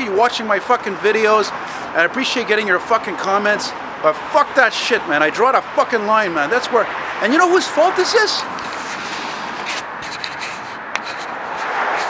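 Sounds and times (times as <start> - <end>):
camera handling noise: 8.5 - 12.0.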